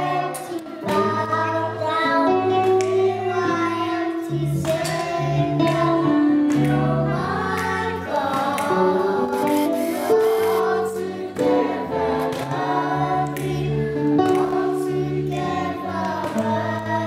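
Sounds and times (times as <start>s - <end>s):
children's choir singing: 0.0s - 17.0s
live band playing: 8.2s - 12.7s.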